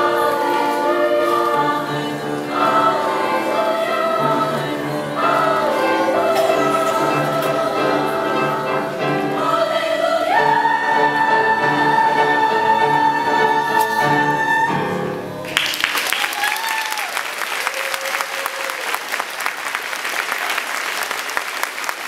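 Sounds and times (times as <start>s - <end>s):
youth choir singing chords: 0.0s - 15.4s.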